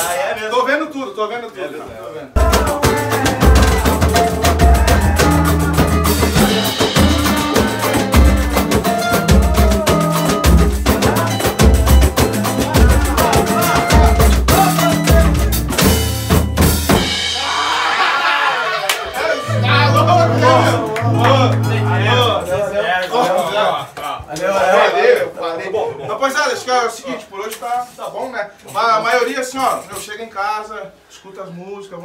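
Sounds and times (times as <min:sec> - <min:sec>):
voices: 0:01.4 - 0:15.7, 0:17.4 - 0:30.2
band playing loud music: 0:02.4 - 0:18.0, 0:19.4 - 0:22.7.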